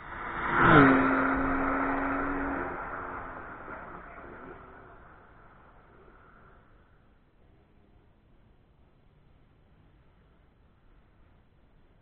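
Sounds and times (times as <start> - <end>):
car engine driving away: 0.0 - 6.8.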